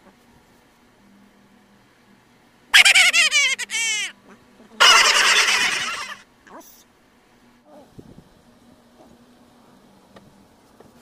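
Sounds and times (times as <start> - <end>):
fowl-like bird calling: 4.8 - 6.2.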